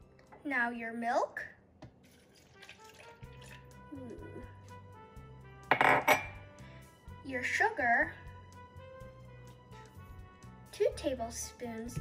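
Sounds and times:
background music: 0.0s - 1.3s, 2.0s - 12.0s
milk pouring into blender jar: 2.0s - 3.8s
dishware clink: 5.7s - 6.4s.

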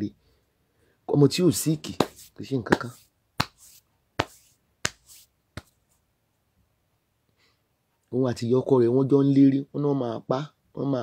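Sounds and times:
sharp snaps: 1.8s - 5.8s.

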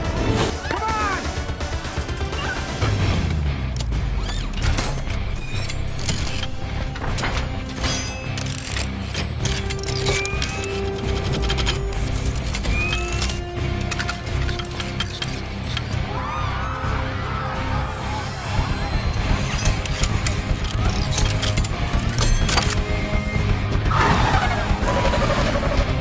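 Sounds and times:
dramatic music score: 0.0s - 26.0s
metallic clicks and clanks: 2.7s - 16.0s, 19.2s - 22.9s.

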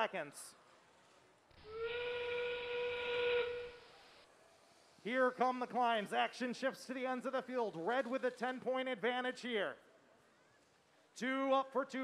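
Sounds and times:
steam train whistle: 1.6s - 4.2s.

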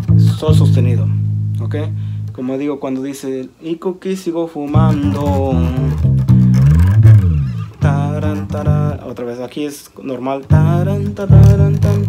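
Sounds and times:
electric bass guitar fingerstyle: 0.0s - 3.0s, 4.6s - 9.6s, 10.2s - 12.0s.

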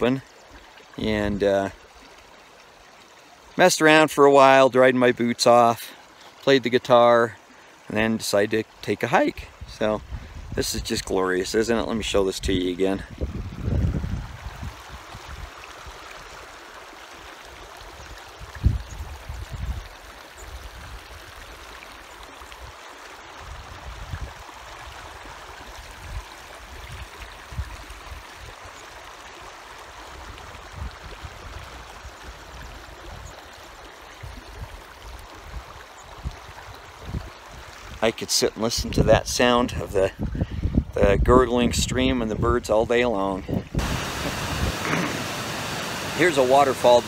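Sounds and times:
stream gurgling over stones: 0.0s - 47.0s.

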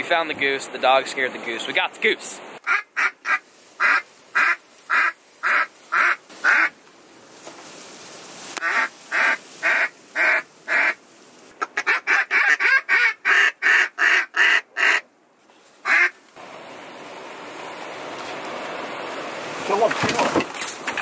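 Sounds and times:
duck call quacks: 2.6s - 6.7s, 8.6s - 11.0s, 11.6s - 15.0s, 15.8s - 16.1s.

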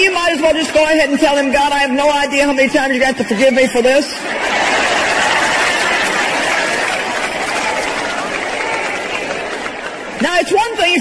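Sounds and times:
laughter: 3.1s - 6.8s
audience applauding: 4.4s - 11.0s.

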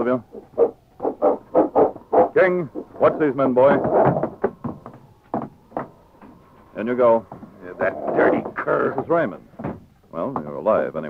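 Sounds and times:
man speaking: 2.4s - 3.8s, 6.8s - 9.5s
knocks: 3.6s - 6.4s, 7.1s - 10.8s.

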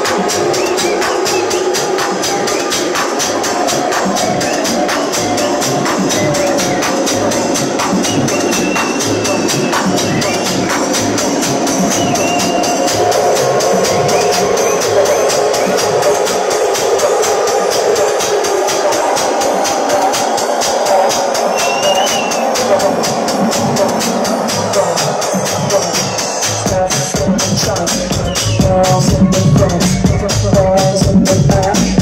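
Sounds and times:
techno track on club speakers: 0.0s - 32.0s.

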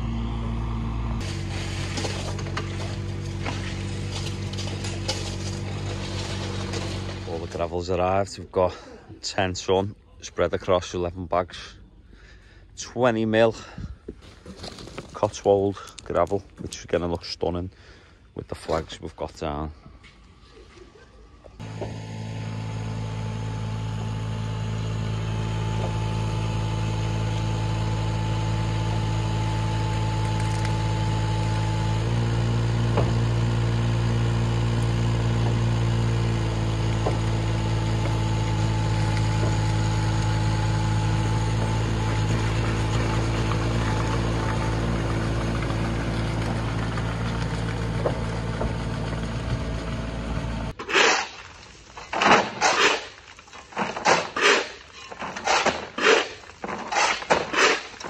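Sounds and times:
excavator diesel engine running: 0.0s - 8.9s, 21.6s - 50.8s.

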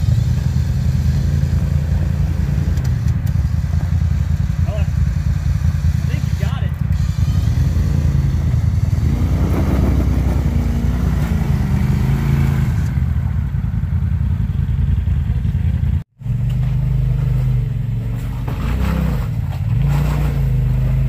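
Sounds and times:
off-road vehicle engine: 0.0s - 21.0s.

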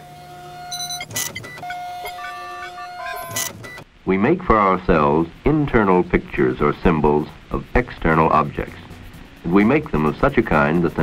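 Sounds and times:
electronic beeps and tones: 0.0s - 3.8s.

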